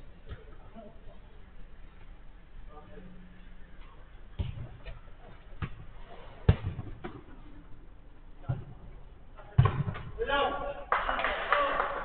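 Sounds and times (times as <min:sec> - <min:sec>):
football kick thuds: 0:04.4 - 0:05.0, 0:05.6 - 0:07.4, 0:08.4 - 0:10.1.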